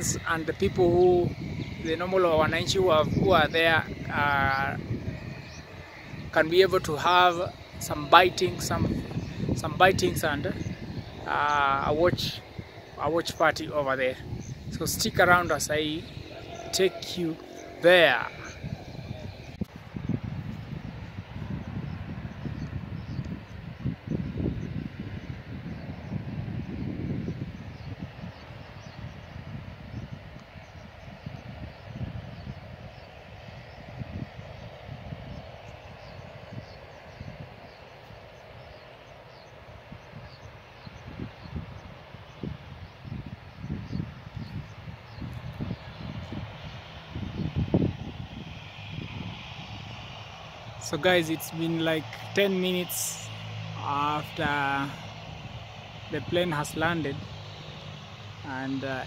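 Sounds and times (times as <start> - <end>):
distant aircraft engines humming: 0.0 - 59.0
wind buffeting microphone: 0.0 - 59.0.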